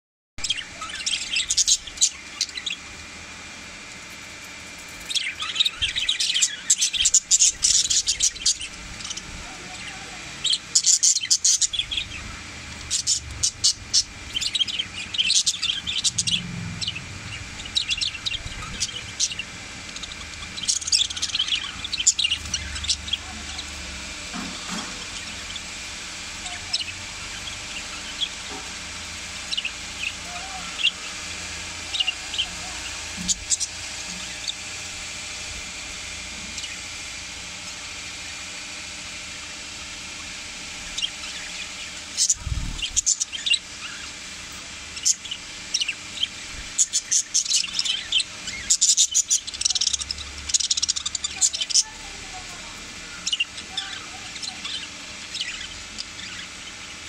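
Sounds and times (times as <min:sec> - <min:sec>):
budgerigars chirping: 0:00.4 - 0:02.8, 0:05.0 - 0:36.9, 0:44.9 - 0:57.0.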